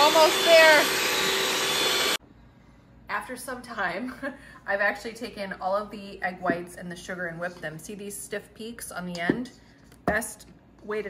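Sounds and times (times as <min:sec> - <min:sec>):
electric hand mixer whirring: 0:00.0 - 0:02.2.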